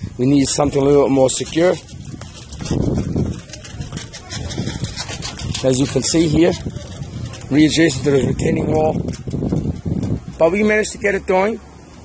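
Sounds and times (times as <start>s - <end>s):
footsteps crunching on gravel: 0.4s - 10.5s.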